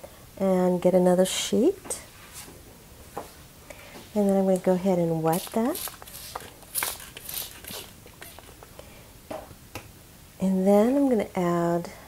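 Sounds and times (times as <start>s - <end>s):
spray bottle hissing spritzes: 5.3s - 8.6s.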